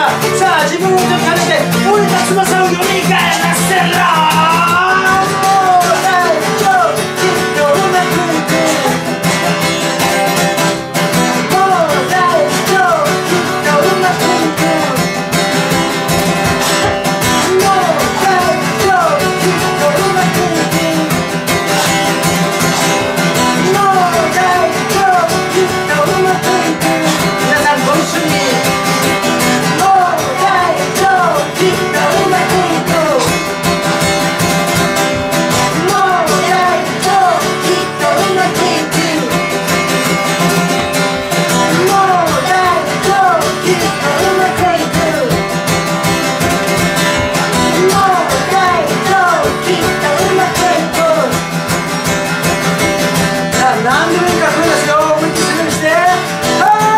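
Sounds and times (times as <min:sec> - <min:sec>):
man singing: 0:00.0 - 0:56.9
strummed acoustic guitar: 0:00.0 - 0:56.9.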